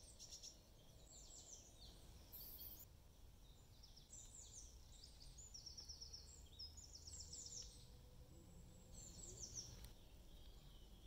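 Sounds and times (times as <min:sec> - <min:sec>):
faint birdsong chirping: 0:00.0 - 0:11.0.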